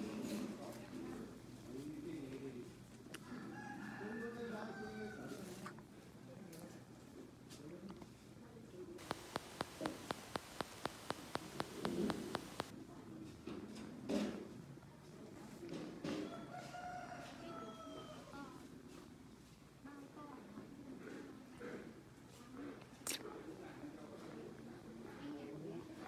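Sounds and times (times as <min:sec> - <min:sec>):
fast regular clicking: 0:09.0 - 0:12.7
hiss: 0:09.0 - 0:12.7.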